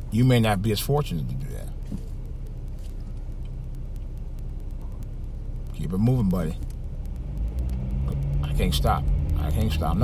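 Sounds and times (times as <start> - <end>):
car engine rumble: 0.0 - 10.0
faint ticks: 0.0 - 10.0
road noise inside car: 0.0 - 10.0.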